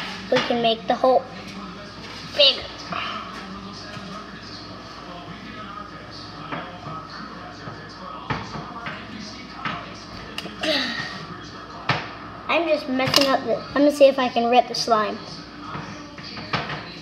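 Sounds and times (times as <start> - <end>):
faint background voices: 0.0 - 17.0.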